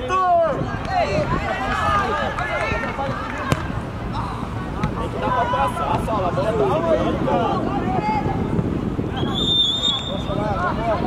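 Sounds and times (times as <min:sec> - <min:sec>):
people shouting outdoors: 0:00.0 - 0:08.5
wind rumble: 0:00.0 - 0:11.0.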